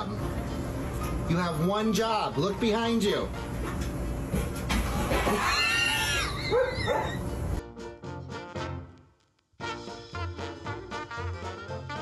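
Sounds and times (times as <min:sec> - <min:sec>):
dog whining: 0:05.2 - 0:07.6
dog yipping: 0:05.3 - 0:07.4.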